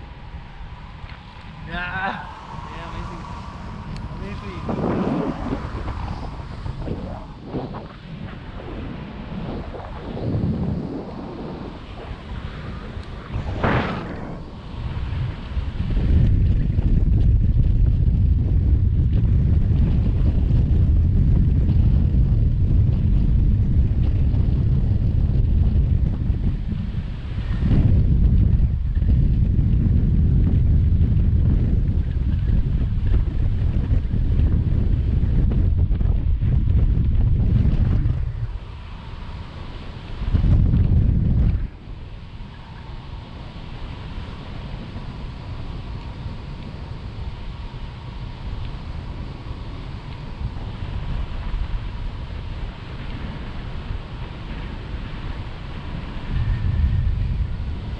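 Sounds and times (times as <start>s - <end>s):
wind buffeting microphone: 0.0s - 57.9s.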